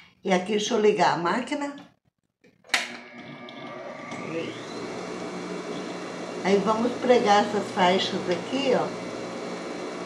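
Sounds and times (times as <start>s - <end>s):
sewing machine motor humming: 2.8s - 10.0s
motor whine rising in pitch: 3.0s - 10.0s.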